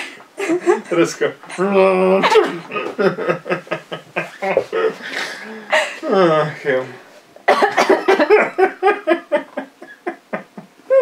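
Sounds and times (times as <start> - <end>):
woman laughing hard: 2.2 - 6.0, 7.7 - 11.0.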